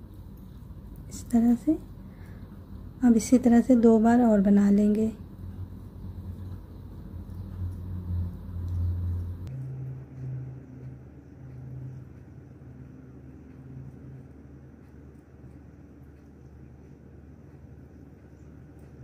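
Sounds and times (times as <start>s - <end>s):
low rumble and hum: 0.0s - 19.0s.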